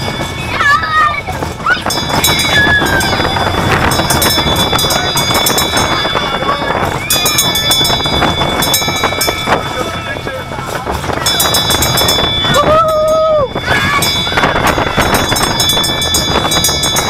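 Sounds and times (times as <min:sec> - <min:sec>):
riders' voices: 0:00.0 - 0:16.9
roller coaster rumbling on rails: 0:00.0 - 0:17.0.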